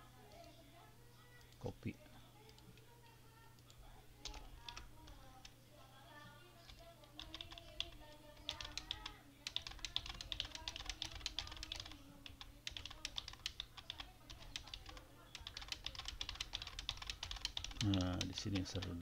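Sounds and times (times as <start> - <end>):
typing on computer keyboard: 4.2 - 5.5, 6.6 - 19.0.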